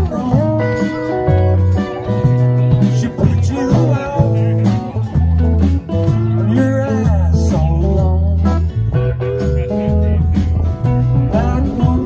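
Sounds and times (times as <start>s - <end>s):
electric bass: 0.0s - 12.0s
electric guitars: 0.0s - 12.0s.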